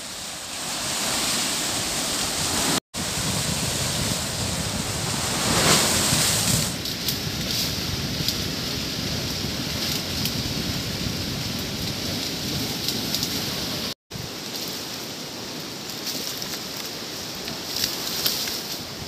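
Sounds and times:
steady rushing outdoor noise: 0.0s - 19.0s.

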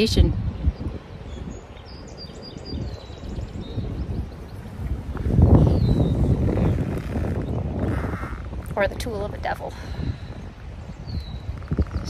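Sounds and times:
wind buffeting microphone: 0.0s - 12.0s
small bird chirping: 0.7s - 8.8s, 10.9s - 12.0s.

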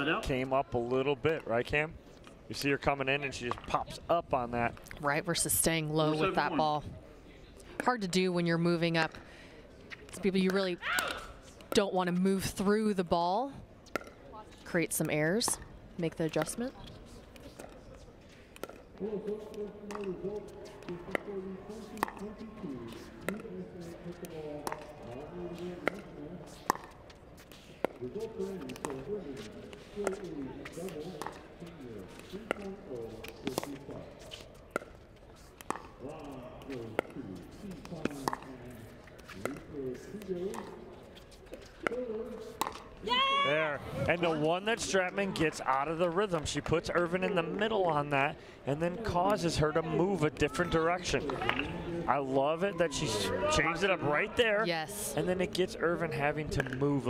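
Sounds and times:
murmur of voices: 14.0s - 57.0s.

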